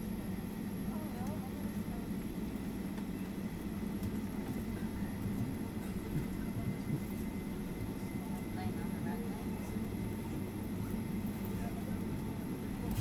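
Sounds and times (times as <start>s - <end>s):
jet engines idling: 0.0s - 13.0s
low cabin hum: 0.0s - 13.0s.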